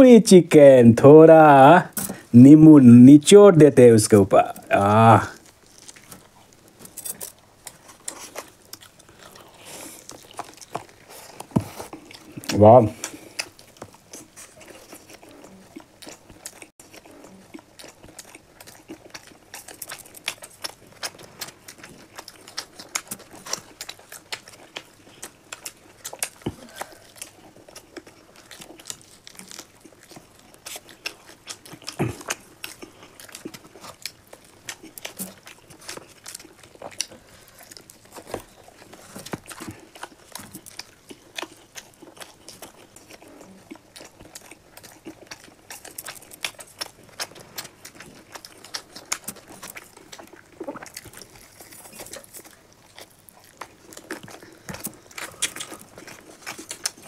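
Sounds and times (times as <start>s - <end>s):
people chewing food: 0.0s - 57.0s
wet mouth smacks: 54.7s - 55.8s.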